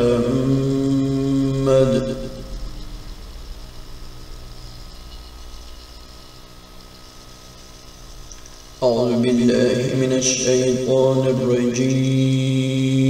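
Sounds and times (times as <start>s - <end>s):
man chanting: 0.0s - 2.8s, 8.8s - 13.0s
low hum with faint hiss: 0.0s - 13.0s.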